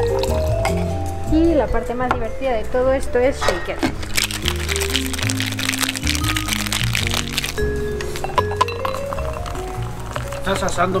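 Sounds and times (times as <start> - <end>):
ice rattling in cocktail shaker: 0.0 - 0.6, 4.0 - 11.0
background music with bass line: 0.0 - 11.0.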